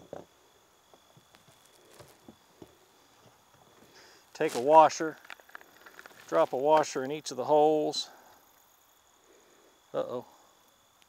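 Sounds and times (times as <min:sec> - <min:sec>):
high-pitched insect drone: 0:00.0 - 0:11.0.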